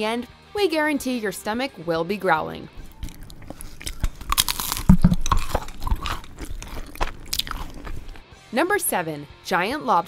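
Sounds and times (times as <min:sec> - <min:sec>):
person chewing crispy food: 0:02.8 - 0:08.2.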